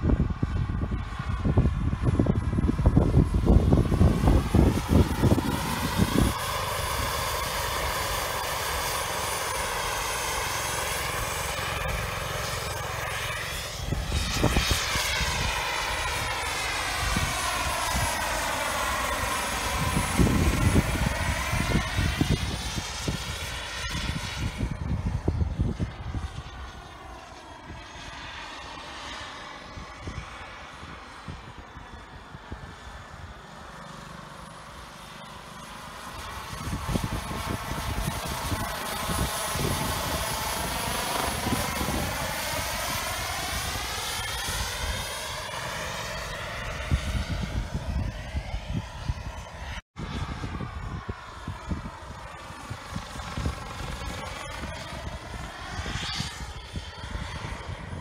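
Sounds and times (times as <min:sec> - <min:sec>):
helicopter flying by: 0:00.0 - 0:58.0.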